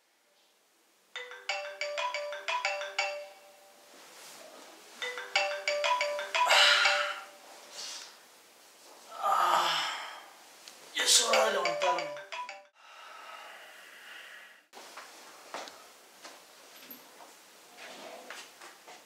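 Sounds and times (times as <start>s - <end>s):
phone alarm tune: 1.2s - 3.8s, 5.0s - 7.6s, 11.2s - 12.7s
man breathing: 12.8s - 14.7s.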